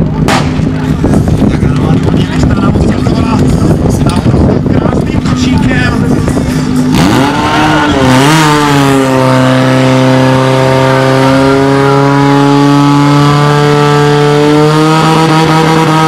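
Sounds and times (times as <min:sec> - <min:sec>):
fire pump engine running: 0:00.0 - 0:15.9.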